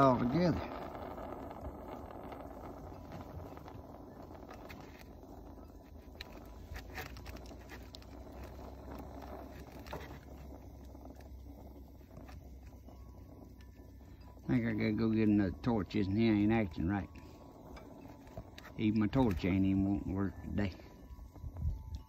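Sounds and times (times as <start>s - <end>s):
faint low rumble: 0.0s - 22.0s.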